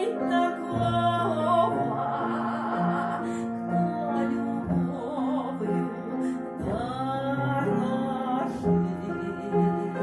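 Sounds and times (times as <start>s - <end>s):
upright piano: 0.0s - 10.0s
woman singing: 0.0s - 10.0s.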